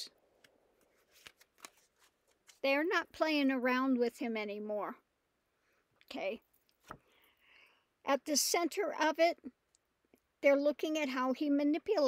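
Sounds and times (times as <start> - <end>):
cards clicking and rustling: 0.4 - 2.6.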